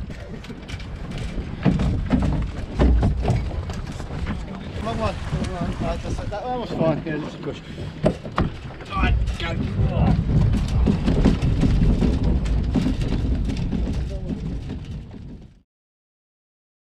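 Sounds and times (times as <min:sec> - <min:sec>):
wind buffeting microphone: 0:00.0 - 0:15.6.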